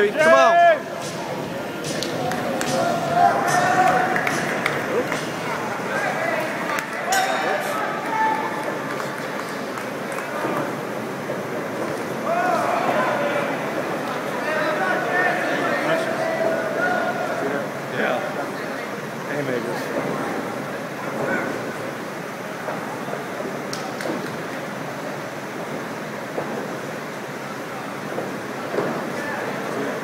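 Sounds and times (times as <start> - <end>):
crowd chatter: 0.0 - 30.0
spectators shouting: 2.1 - 5.0, 5.6 - 8.9, 12.2 - 17.4
short ringing ping: 7.1 - 7.8.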